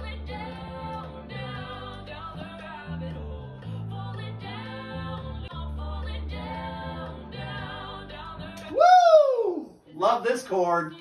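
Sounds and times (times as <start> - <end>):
person singing sliding vocal glide: 0.0 - 11.0
recorded vocal harmonies: 0.0 - 11.0.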